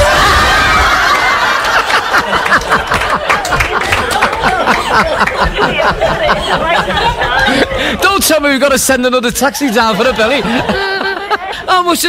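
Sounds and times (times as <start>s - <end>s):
loud sustained laughter: 0.0s - 8.0s, 9.7s - 11.7s.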